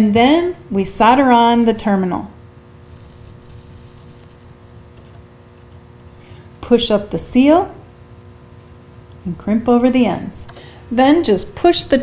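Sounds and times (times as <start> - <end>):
steady low hum: 0.0 - 12.0
solder sizzling under soldering iron: 2.6 - 6.2.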